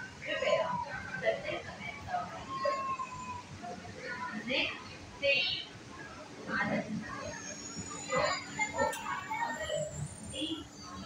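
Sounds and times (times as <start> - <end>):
train carriage hum with whine: 0.0 - 11.0
voices: 0.0 - 11.0.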